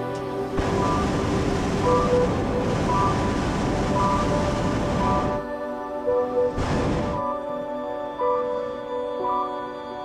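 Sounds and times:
faint music: 0.0s - 10.0s
propane burner blast: 0.6s - 5.5s, 6.5s - 7.2s.

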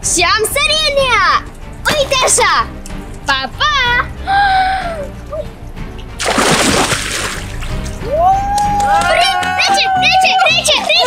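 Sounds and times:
child splashing into pool: 6.2s - 7.7s.

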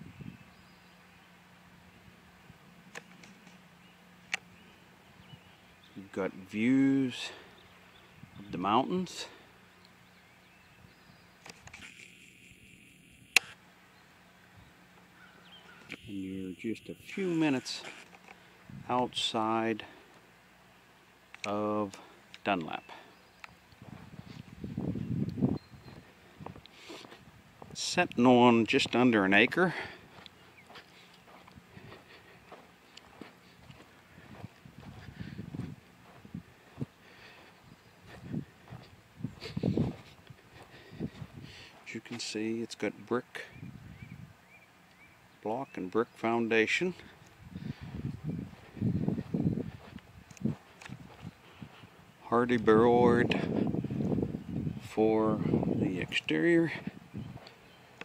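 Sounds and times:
sharp click: 13.3s - 13.6s
footsteps on grass: 22.0s - 42.3s, 47.0s - 52.6s.

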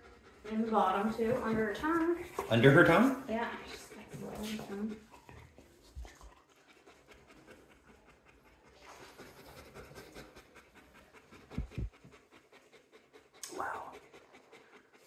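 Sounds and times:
dog panting: 0.0s - 15.0s
low thumps: 11.6s - 11.9s.

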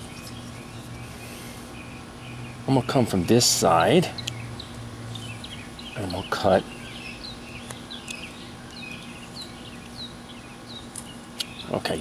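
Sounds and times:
bird chirping: 0.0s - 11.9s.

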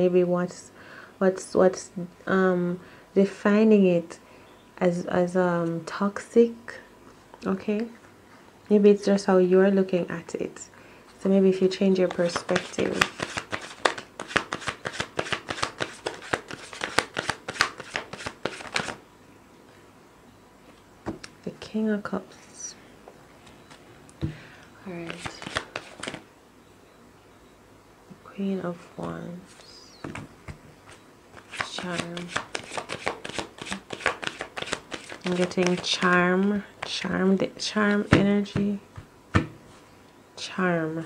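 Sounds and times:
cards being shuffled: 12.0s - 19.0s, 25.0s - 26.2s, 30.0s - 37.0s.

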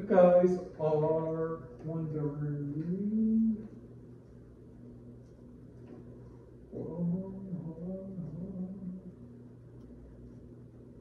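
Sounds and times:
faint low hum: 0.0s - 11.0s
man humming hesitation: 2.6s - 3.8s, 6.7s - 9.2s.

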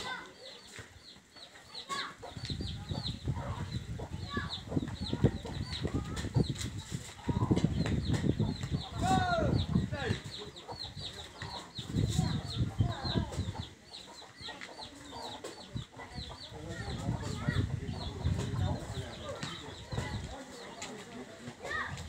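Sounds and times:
chickens clucking: 0.0s - 22.0s
chicks peeping: 0.0s - 22.0s.

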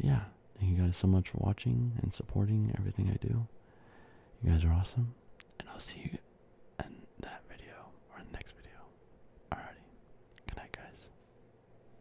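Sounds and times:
man whispering: 4.4s - 11.2s.

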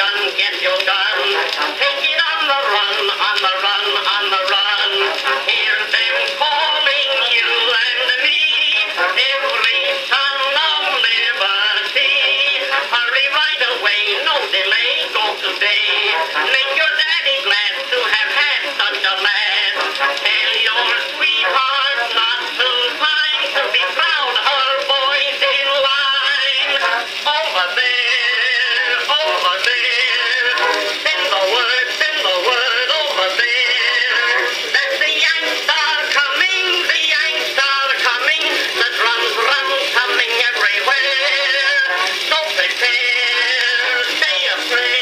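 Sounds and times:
phonograph playing band music: 0.0s - 45.0s.

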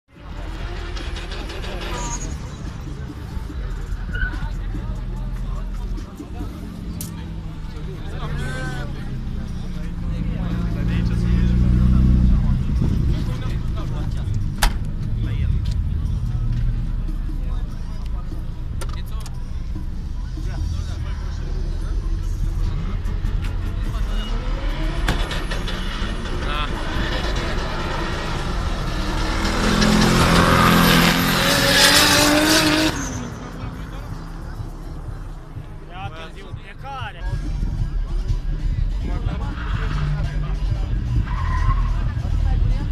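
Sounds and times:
car engines rumbling: 0.1s - 42.9s
crowd chatter: 0.1s - 42.9s.

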